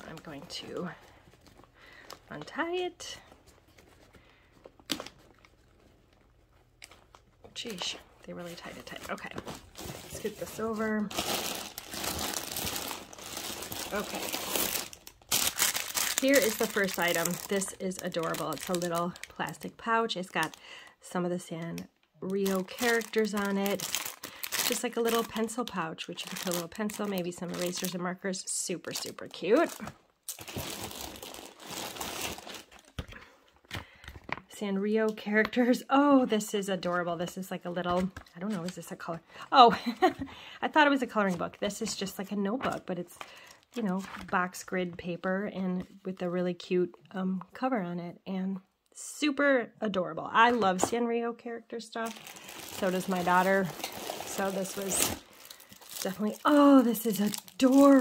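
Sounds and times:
plastic bag rustling: 0.0s - 19.6s, 22.3s - 28.0s, 28.9s - 33.0s, 52.0s - 58.0s
plastic wrapping crinkling: 0.0s - 20.8s, 21.6s - 28.1s, 28.8s - 33.2s, 52.0s - 58.0s
plastic bag crackles: 6.8s - 19.7s, 22.3s - 28.0s, 28.9s - 33.0s, 52.0s - 58.0s.

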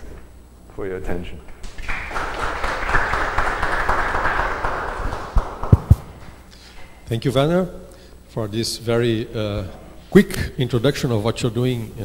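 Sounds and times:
audience applauding: 1.6s - 6.1s.

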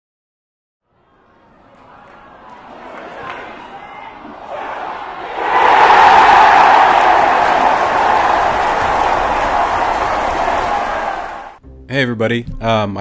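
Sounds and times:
stadium crowd cheering: 0.9s - 11.6s.

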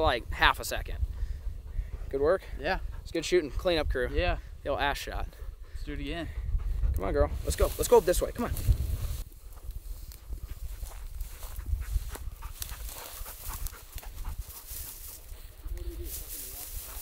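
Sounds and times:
wind rumble on microphone: 0.0s - 17.0s
dog panting: 0.9s - 8.3s, 10.3s - 17.0s
footsteps in dry grass: 7.4s - 17.0s.

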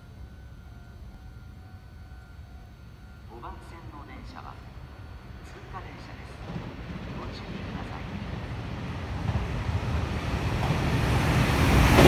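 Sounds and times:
electric train rumbling: 0.0s - 12.0s
faint high whine: 0.0s - 12.0s.

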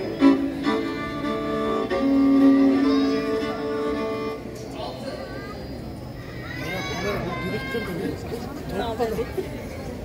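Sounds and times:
folk band music: 0.0s - 4.6s.

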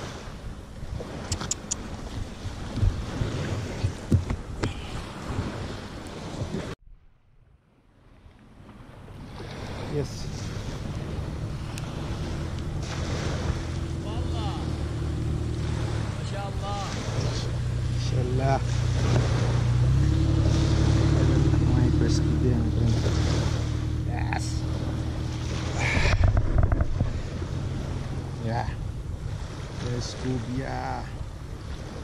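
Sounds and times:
wind on microphone: 0.0s - 6.8s, 8.1s - 32.0s
low engine hum: 7.9s - 32.0s.

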